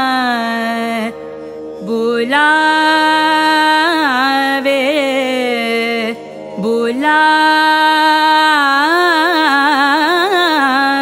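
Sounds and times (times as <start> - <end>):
woman singing ornamented notes: 1.8 - 11.0.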